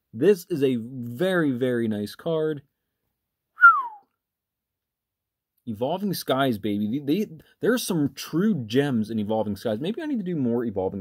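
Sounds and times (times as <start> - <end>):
falling whistle: 3.6 - 4.1.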